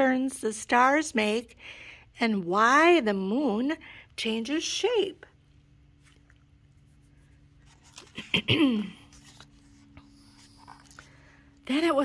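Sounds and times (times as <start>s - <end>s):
low steady hum: 0.0s - 12.0s
paper page being turned: 7.6s - 11.0s.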